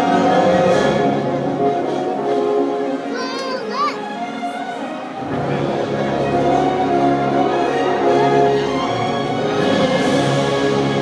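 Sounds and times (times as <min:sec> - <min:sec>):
orchestral show music: 0:00.0 - 0:11.0
child calling out: 0:03.1 - 0:04.0.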